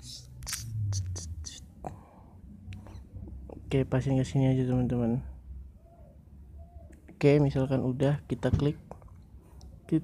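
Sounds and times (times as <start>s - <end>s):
man whispering: 0.0s - 2.1s.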